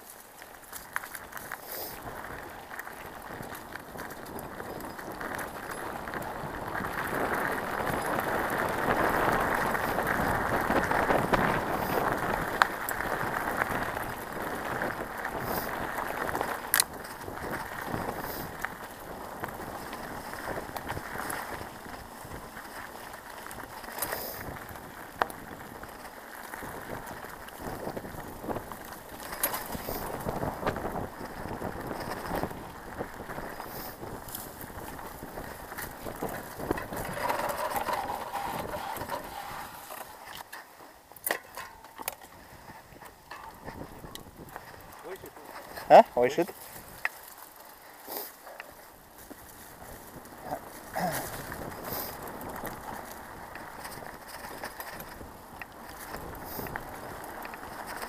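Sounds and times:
bike rattling clicks: 0:00.0 - 0:58.0
bike tyres on dirt and leaves: 0:00.0 - 0:58.0.

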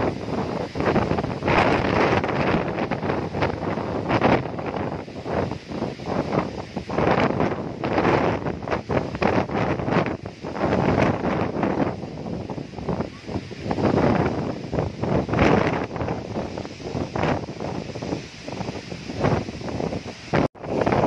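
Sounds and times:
gusty wind buffeting microphone: 0:00.0 - 0:21.0.

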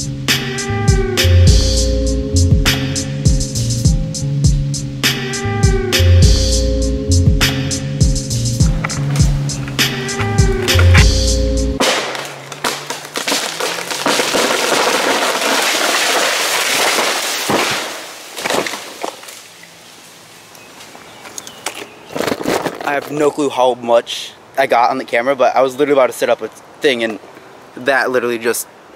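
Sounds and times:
background music with beat: 0:00.0 - 0:11.8
leaves rustling: 0:08.2 - 0:28.9
wood cracking: 0:08.6 - 0:11.2, 0:11.8 - 0:19.8, 0:20.8 - 0:23.3
tree crashing through branches: 0:11.8 - 0:20.2.

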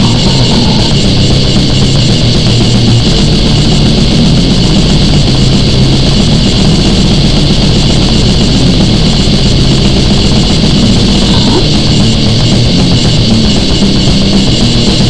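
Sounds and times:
distorted guitars: 0:00.0 - 0:15.0
drums: 0:00.0 - 0:15.0.

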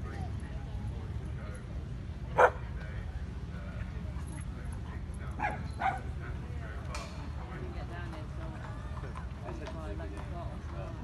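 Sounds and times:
dog barking: 0:02.4 - 0:02.6, 0:05.4 - 0:06.1.

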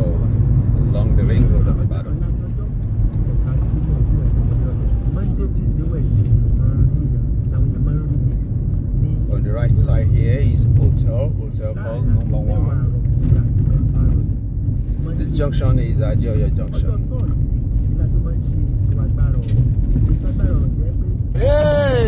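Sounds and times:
car engine and tyre rumble: 0:00.0 - 0:22.0
person speaking: 0:21.4 - 0:22.0.

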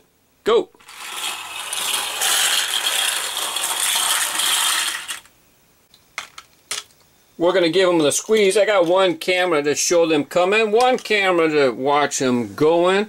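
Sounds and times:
toy cars rattling down plastic track: 0:00.8 - 0:05.3.

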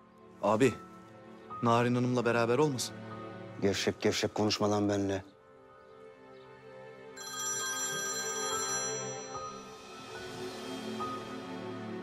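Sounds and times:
soft background music: 0:00.0 - 0:12.0
phone ringtone chiming: 0:07.2 - 0:10.0.

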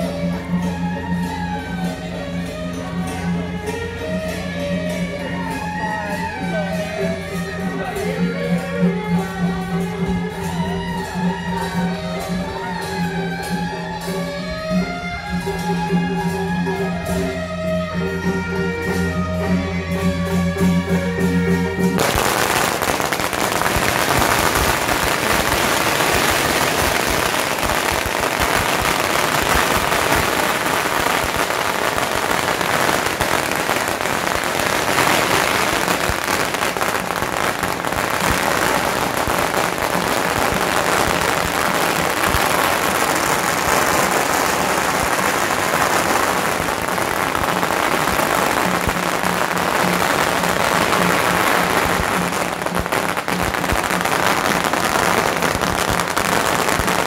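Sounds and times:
firecrackers crackling: 0:00.0 - 0:57.0.

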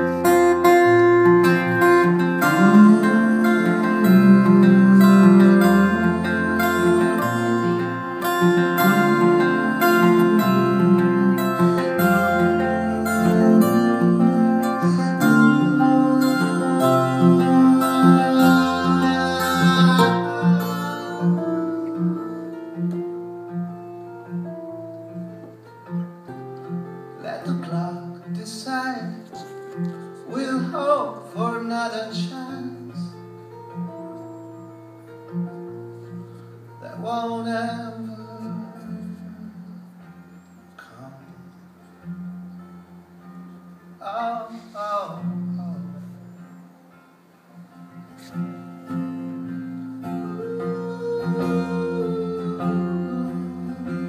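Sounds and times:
person singing: 0:00.0 - 0:23.1, 0:50.0 - 0:54.0
acoustic guitar chords: 0:00.0 - 0:54.0.

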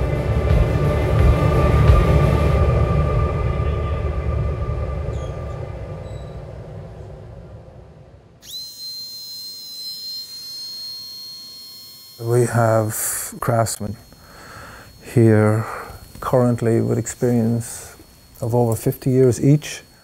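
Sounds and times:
deep rumbling: 0:00.0 - 0:08.4
high-speed hand tool whining: 0:08.4 - 0:20.0.

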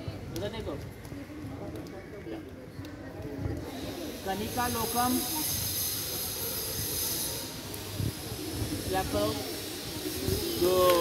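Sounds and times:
high-pitched hiss: 0:03.7 - 0:11.0.

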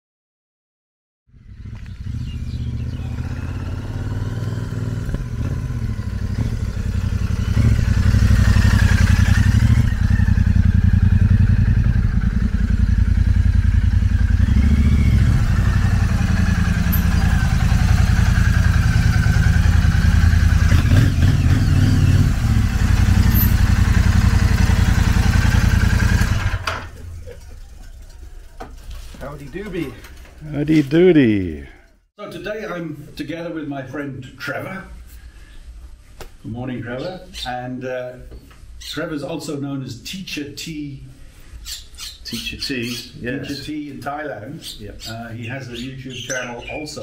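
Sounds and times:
motorcycle engine running: 0:01.3 - 0:29.2.

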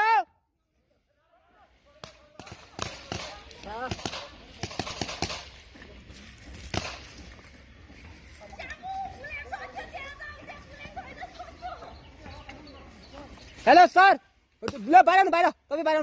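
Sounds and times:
distant shouting: 0:00.0 - 0:00.6
paintball markers firing: 0:02.0 - 0:05.7, 0:06.6 - 0:07.3.

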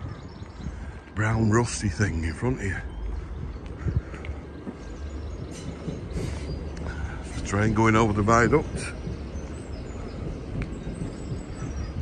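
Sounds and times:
train rumbling over viaduct: 0:00.0 - 0:12.0.

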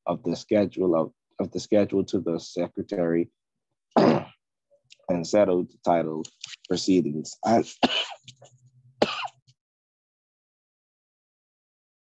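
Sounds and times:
person clearing throat: 0:04.0 - 0:04.4, 0:07.8 - 0:08.3, 0:09.0 - 0:09.4.

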